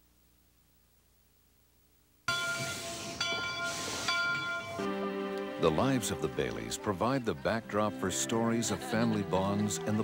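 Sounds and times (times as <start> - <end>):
steam hissing: 2.3 - 4.6
music: 2.4 - 10.0.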